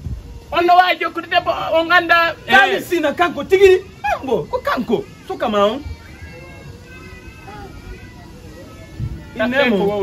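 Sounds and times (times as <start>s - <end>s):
faint steady background tones: 0.0s - 10.0s.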